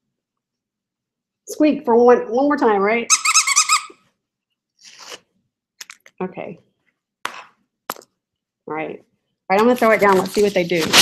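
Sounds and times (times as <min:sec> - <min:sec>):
dog toy squeaking: 0:03.1 - 0:04.0.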